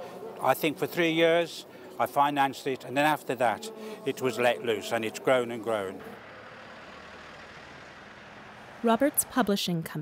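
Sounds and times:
lorry engine and road noise: 0.0 - 10.0.

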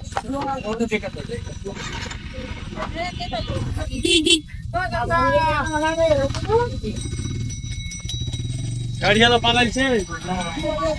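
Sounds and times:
motorcycle engine idling: 0.0 - 10.9.

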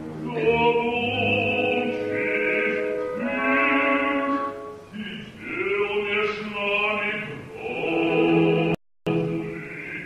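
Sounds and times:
man singing operatically: 0.2 - 10.0.

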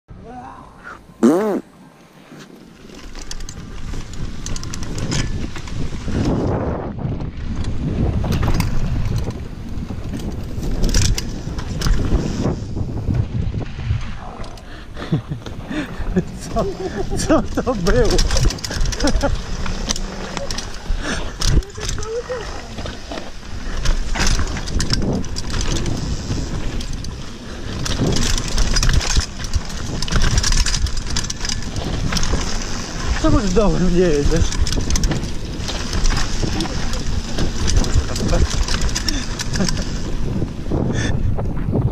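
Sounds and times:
bike tyres rumbling on dirt: 1.2 - 41.9
bike rattling over bumps: 2.2 - 41.9
wind buffeting microphone: 3.2 - 41.9.

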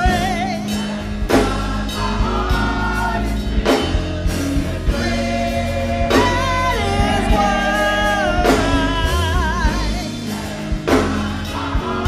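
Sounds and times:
band with bass: 0.0 - 12.0
church choir singing gospel: 0.0 - 12.0.

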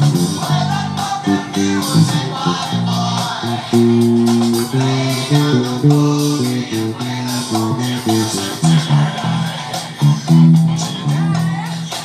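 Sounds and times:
backing music track: 0.0 - 12.0
electric bass funk line: 0.0 - 12.0.

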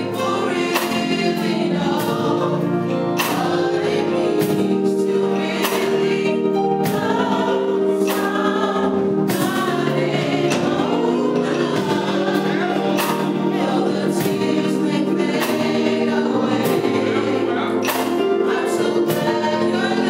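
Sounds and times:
gospel group singing in harmony: 0.0 - 20.0
regular beat: 0.0 - 20.0.

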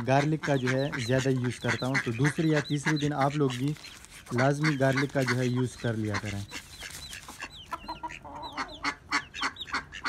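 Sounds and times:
chickens clucking: 0.0 - 10.0
chicks peeping: 0.0 - 10.0.

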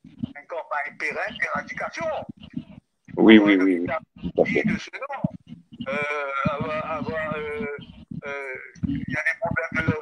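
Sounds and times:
man talking: 0.2 - 2.4, 3.1 - 10.0.

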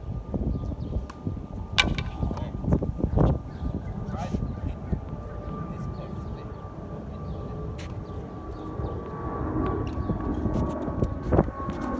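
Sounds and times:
wind rumbling on microphone: 0.0 - 11.9.

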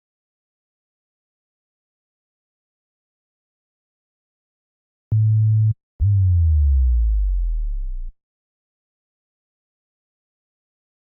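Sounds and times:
sine-wave synth bass notes: 5.1 - 8.1.

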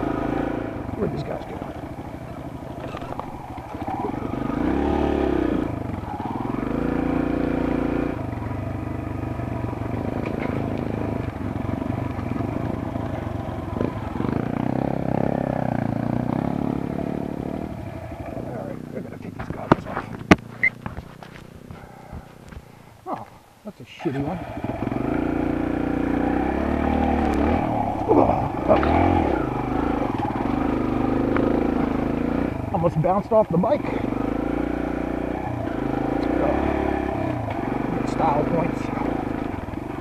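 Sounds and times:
dirt bike engine revving: 0.0 - 22.8, 24.1 - 40.0
bike knocking over rocks: 19.4 - 22.7.

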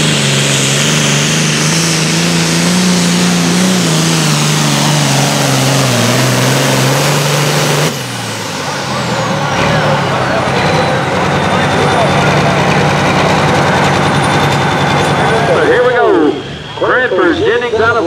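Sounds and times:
tractor diesel engine at full power: 0.0 - 18.0
turbocharger whine spinning down: 0.0 - 18.0.

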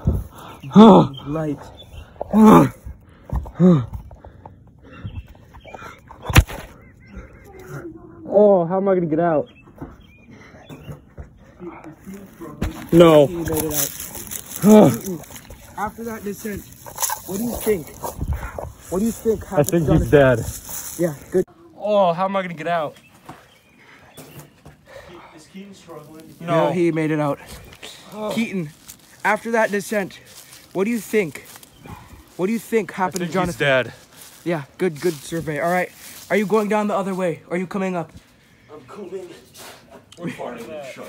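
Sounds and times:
faint breathing: 1.7 - 6.2, 23.2 - 25.9, 31.4 - 32.4, 38.2 - 40.1
scuffing and clothing rustle: 12.1 - 21.5, 25.8 - 32.6, 33.2 - 37.3.

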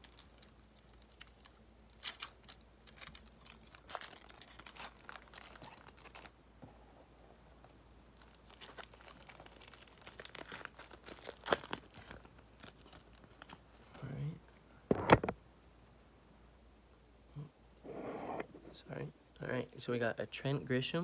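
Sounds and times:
foil wrapper crinkling and tearing: 0.0 - 6.4, 8.0 - 13.6.

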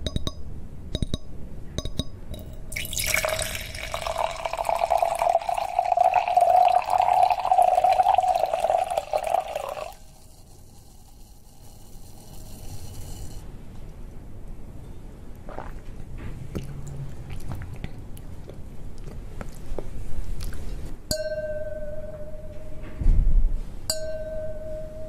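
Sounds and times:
wine pouring into glass: 2.4 - 13.4.

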